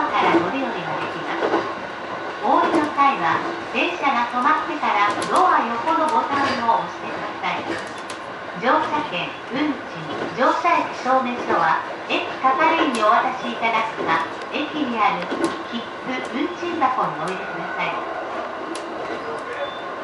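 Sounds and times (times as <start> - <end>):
recorded passenger announcement: 0.0 - 1.7, 2.4 - 7.9, 8.6 - 18.4, 19.1 - 20.0
electric train running noise: 0.0 - 20.0.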